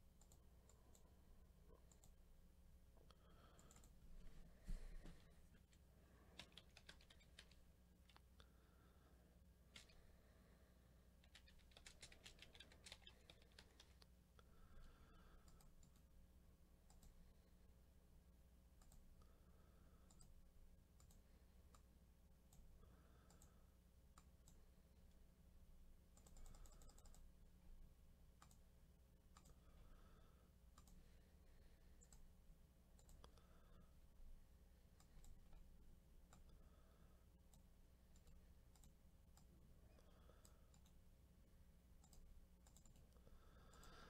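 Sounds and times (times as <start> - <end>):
low steady hum: 0.0 - 44.0
computer keyboard typing: 6.3 - 8.2, 11.2 - 14.1, 26.2 - 27.2, 42.0 - 43.1.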